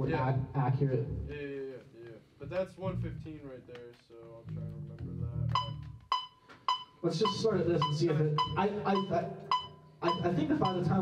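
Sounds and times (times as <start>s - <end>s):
electronic metronome beeping: 5.5s - 11.0s.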